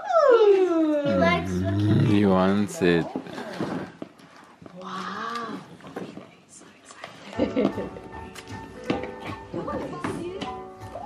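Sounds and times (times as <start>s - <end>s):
drawn-out vocal sound: 1.1s - 2.4s.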